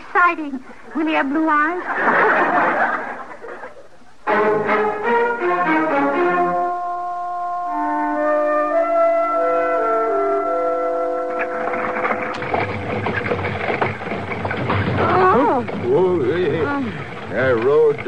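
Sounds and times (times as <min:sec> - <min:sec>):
orchestral music with held notes: 0:04.2 - 0:14.2
stagecoach rumbling and rattling: 0:09.8 - 0:18.0
voices: 0:14.9 - 0:18.0.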